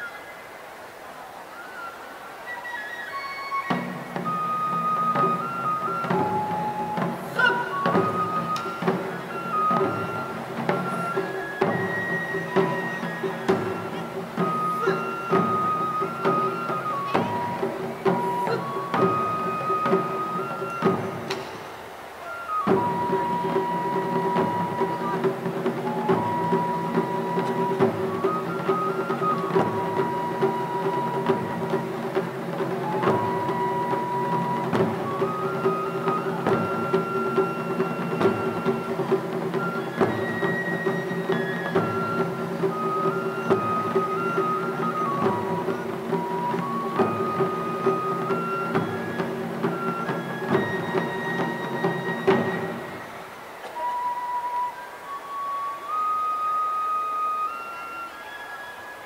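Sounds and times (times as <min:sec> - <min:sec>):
bamboo flute melody: 0:00.0 - 0:59.0
taiko drums playing: 0:03.6 - 0:21.9, 0:22.5 - 0:53.2.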